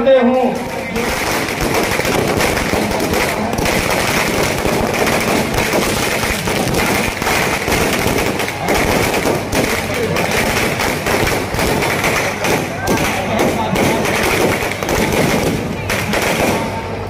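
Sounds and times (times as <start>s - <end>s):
firecrackers crackling: 0.0s - 17.0s.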